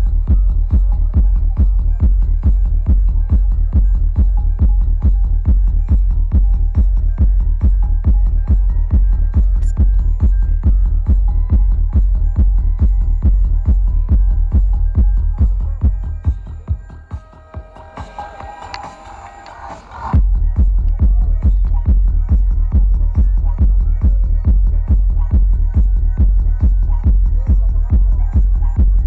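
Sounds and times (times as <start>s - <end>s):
loud psytrance music: 0.0s - 29.0s.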